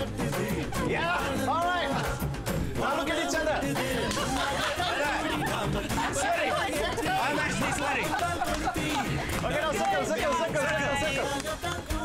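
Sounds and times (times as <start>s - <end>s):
song with sung vocals: 0.0s - 12.0s
people chattering: 0.8s - 11.8s.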